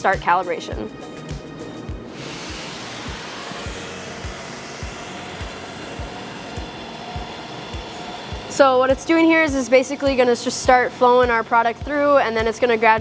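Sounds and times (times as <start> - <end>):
background music with beat: 0.0 - 13.0.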